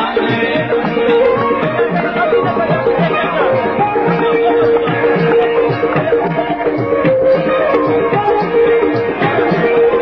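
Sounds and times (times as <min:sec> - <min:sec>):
man singing: 0:00.0 - 0:10.0
tabla drum beat: 0:00.0 - 0:10.0.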